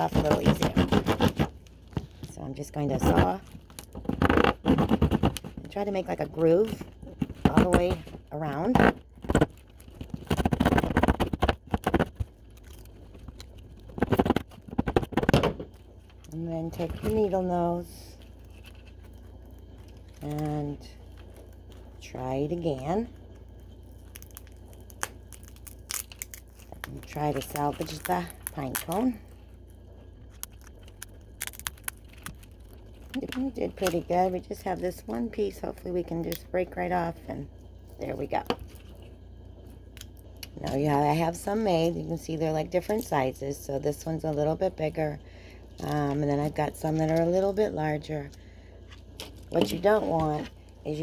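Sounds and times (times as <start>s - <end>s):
serrated knife sawing pine cone: 0.0s - 1.6s
faint low hum: 0.0s - 51.0s
pine cone scales snapping: 24.0s - 29.1s, 30.3s - 34.0s.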